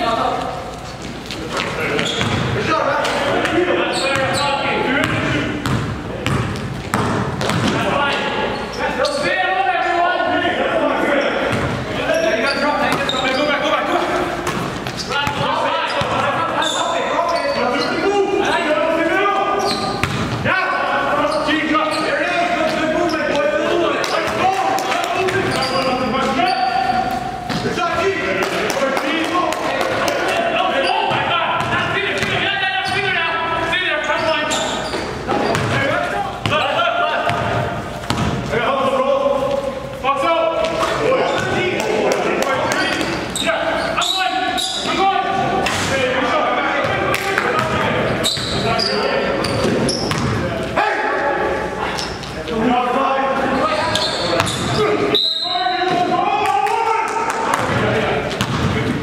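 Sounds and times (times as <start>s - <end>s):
players' voices echoing: 0.0s - 59.0s
basketball bouncing on gym floor: 2.0s - 2.6s, 5.0s - 7.9s, 19.7s - 20.4s, 31.1s - 33.1s, 35.4s - 36.6s, 37.2s - 38.4s, 49.4s - 50.4s, 57.6s - 59.0s.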